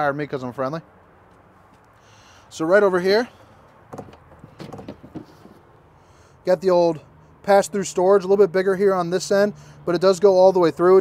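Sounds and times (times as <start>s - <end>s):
storage door knocks and rattles: 3.9s - 5.4s.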